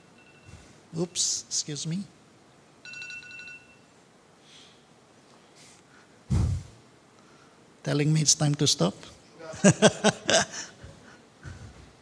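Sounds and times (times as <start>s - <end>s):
phone timer beep: 0.0s - 0.6s, 2.8s - 3.9s.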